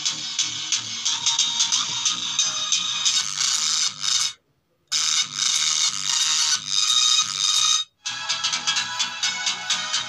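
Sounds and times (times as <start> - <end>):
song through small speakers: 0.0 - 10.0.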